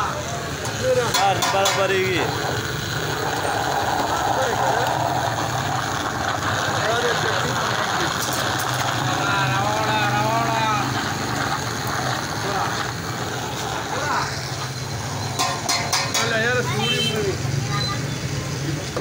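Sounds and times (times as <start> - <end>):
many voices chattering: 0.0 - 19.0
traffic engine hum: 0.0 - 19.0.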